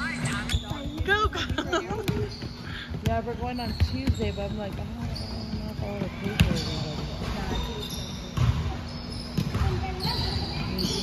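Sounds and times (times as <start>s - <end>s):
balls bouncing on gym floor: 0.0s - 11.0s.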